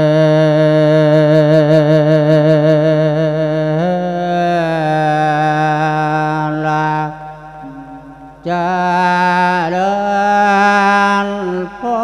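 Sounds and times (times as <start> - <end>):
man chanting melodic sermon: 0.0 - 12.0.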